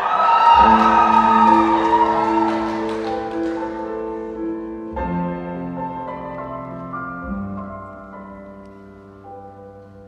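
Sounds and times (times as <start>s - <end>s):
audience cheering: 0.0s - 3.8s
people clapping: 0.0s - 4.2s
grand piano chords: 0.0s - 10.0s.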